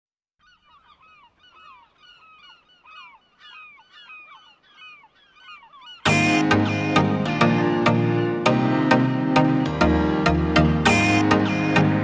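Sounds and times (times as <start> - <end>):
birds honking: 0.4 - 12.0.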